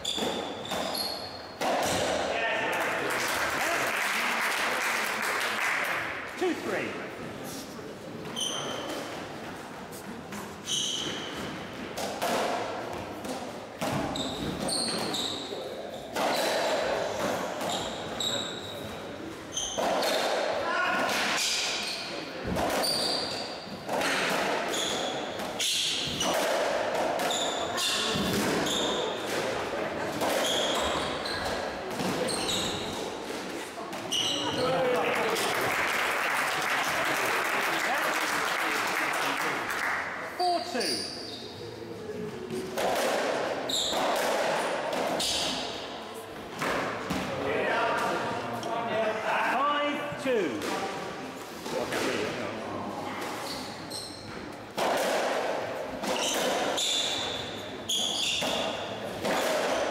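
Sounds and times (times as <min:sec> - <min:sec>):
shoe squeaks on wooden floor: 0:00.0 - 0:01.6, 0:08.3 - 0:09.1, 0:10.6 - 0:11.5, 0:14.1 - 0:16.4, 0:17.6 - 0:20.3, 0:22.8 - 0:23.8, 0:24.7 - 0:26.3, 0:27.3 - 0:29.3, 0:30.4 - 0:33.1, 0:34.0 - 0:34.7, 0:40.7 - 0:41.6, 0:43.6 - 0:44.0, 0:53.4 - 0:54.5, 0:56.1 - 0:59.0
applause: 0:02.8 - 0:06.2, 0:34.9 - 0:40.1.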